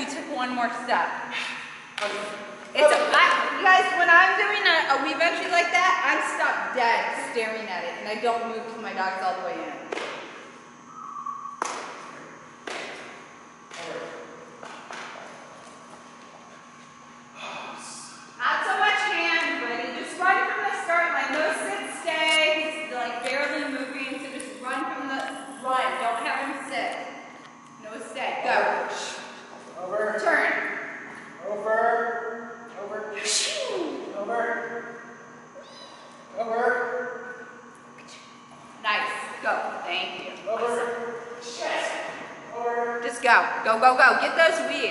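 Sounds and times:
drawn-out vocal call: 10.9s - 11.6s
faint high chirps: 10.9s - 11.6s.

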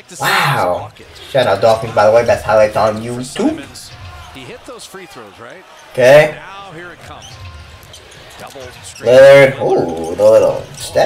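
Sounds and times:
shoe squeaks: 1.2s - 4.6s, 7.0s - 11.0s.

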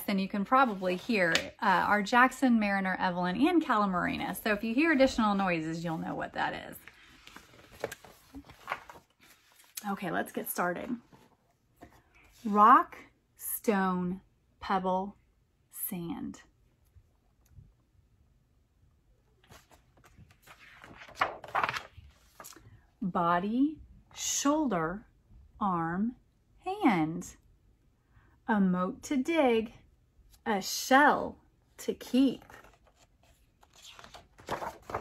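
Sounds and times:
paper rustling and soft knocks: 0.3s - 1.9s, 4.8s - 12.6s, 19.4s - 22.8s, 32.1s - 35.0s
faint book handling sounds: 5.2s - 12.6s, 19.3s - 22.7s, 32.1s - 35.0s.

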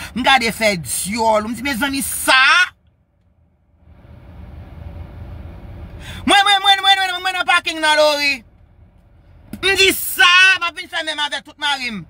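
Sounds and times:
car cabin rumble and hiss: 0.0s - 12.0s.

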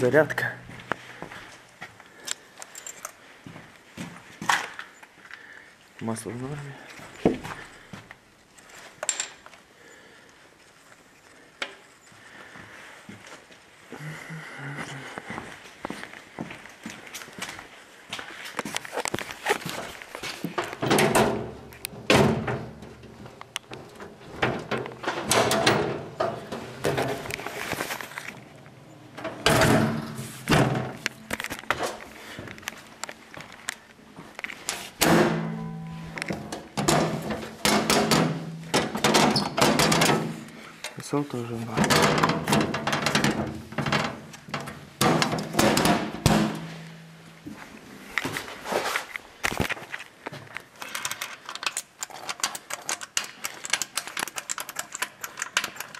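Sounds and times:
metal knocks thumps and rattles: 20.5s - 27.6s, 29.1s - 31.9s, 35.0s - 40.7s, 41.7s - 47.2s
steady low tones: 35.1s - 36.5s.

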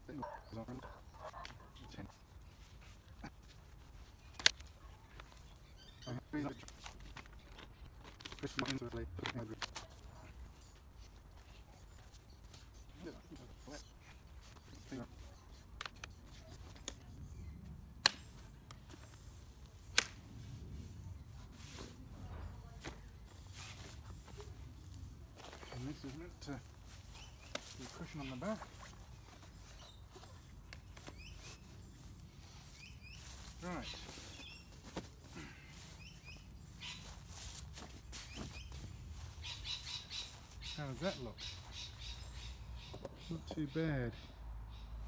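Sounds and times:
small birds chirping: 0.0s - 45.0s.

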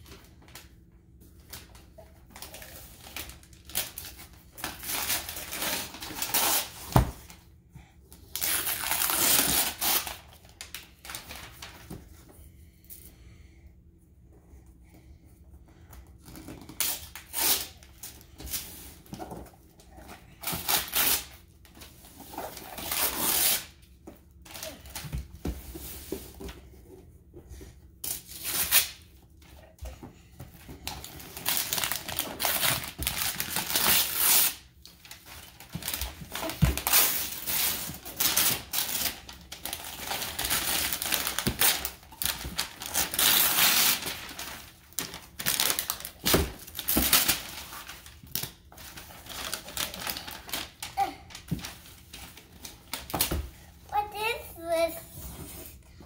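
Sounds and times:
wrapping paper tearing and rustling: 1.4s - 7.4s, 8.2s - 11.9s, 16.3s - 25.0s, 28.0s - 29.1s, 30.8s - 54.9s.

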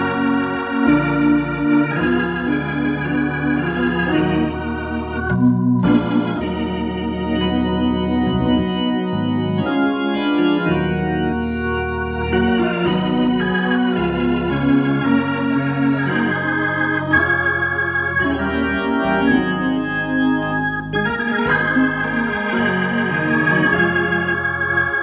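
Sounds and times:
organ playing gospel chords: 0.0s - 25.0s.

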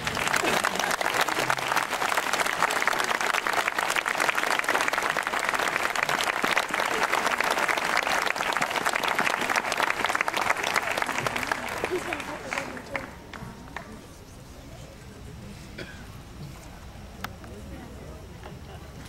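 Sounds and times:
audience applauding: 0.0s - 14.0s.

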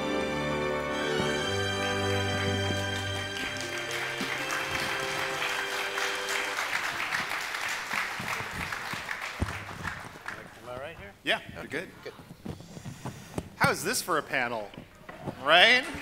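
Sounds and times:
walk-on music: 0.0s - 6.9s
audience applause: 1.4s - 10.8s.

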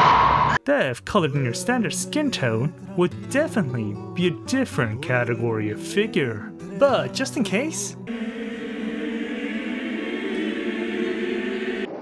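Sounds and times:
choir holding a chord: 6.8s - 12.0s.

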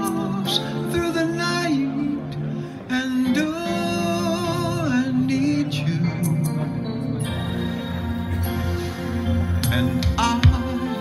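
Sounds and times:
man singing into microphone: 0.0s - 7.0s, 9.6s - 11.0s
recorded ballad accompaniment: 0.0s - 11.0s.

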